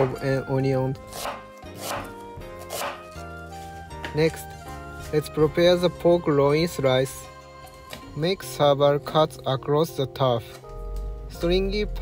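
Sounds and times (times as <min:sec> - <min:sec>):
background music: 0:00.0 - 0:12.0
knife slicing onion: 0:01.0 - 0:03.2.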